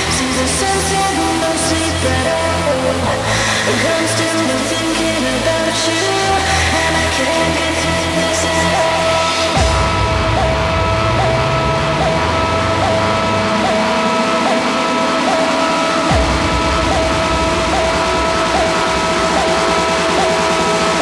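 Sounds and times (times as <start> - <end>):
rising synth sweep: 0.0 - 21.0
held high synth tone: 6.2 - 21.0
deep bass and kick drum: 9.6 - 14.7, 16.1 - 21.0.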